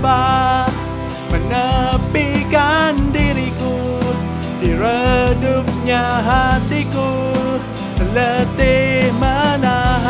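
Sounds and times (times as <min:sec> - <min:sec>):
instrumental backing: 0:00.0 - 0:10.0
man singing pop ballad: 0:00.0 - 0:10.0.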